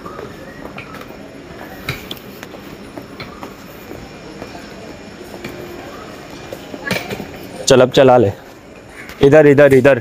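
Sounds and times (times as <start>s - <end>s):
train running wheel noise: 0.0s - 10.0s
footsteps on stairs: 0.1s - 7.0s.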